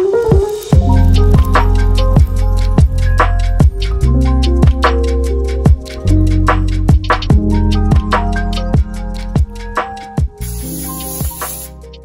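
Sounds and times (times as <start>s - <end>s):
background music: 0.0s - 12.0s
oil spray can hissing: 10.4s - 11.9s.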